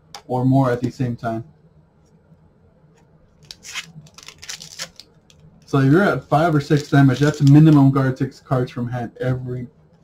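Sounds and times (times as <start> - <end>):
cards and wrappers rustling: 3.4 - 8.0.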